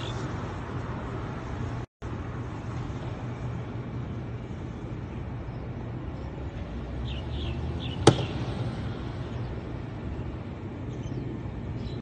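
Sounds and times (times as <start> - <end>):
road traffic hum: 0.0 - 12.0.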